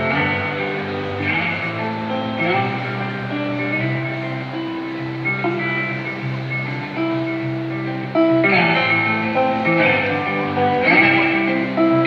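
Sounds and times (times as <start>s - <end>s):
guitar playing long notes: 0.0s - 12.0s.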